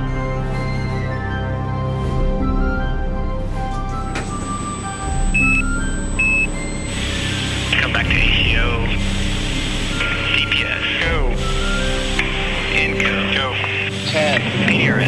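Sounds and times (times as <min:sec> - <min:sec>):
background music sustained tones: 0:00.0 - 0:15.0
short high beeps: 0:05.4 - 0:06.6
tinny radio voices: 0:07.0 - 0:09.1, 0:09.9 - 0:15.0.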